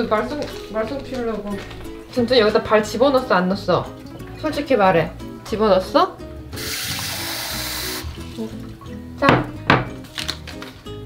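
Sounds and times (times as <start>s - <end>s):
tap water running into sink: 6.6s - 9.8s.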